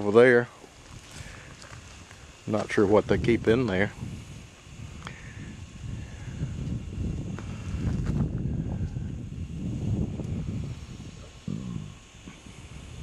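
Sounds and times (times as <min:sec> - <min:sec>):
wind buffeting microphone: 0:01.1 - 0:13.0.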